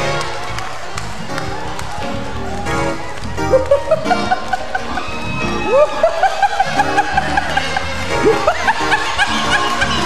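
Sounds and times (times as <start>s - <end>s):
live worship music: 0.0s - 10.0s
man laughing into microphone: 3.5s - 10.0s.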